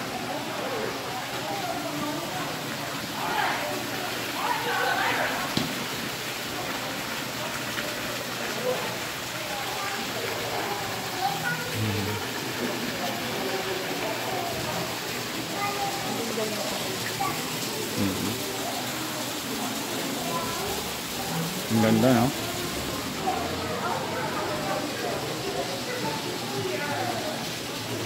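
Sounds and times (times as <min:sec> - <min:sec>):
faint voices: 0:00.0 - 0:28.0
water falling down stone wall: 0:00.0 - 0:28.0.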